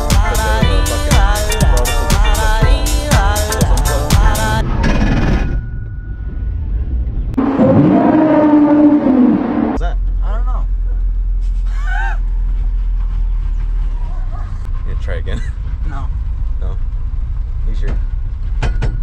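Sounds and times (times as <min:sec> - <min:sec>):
held engine tone: 0:00.0 - 0:19.0
car engine rumble from inside cabin: 0:09.7 - 0:19.0.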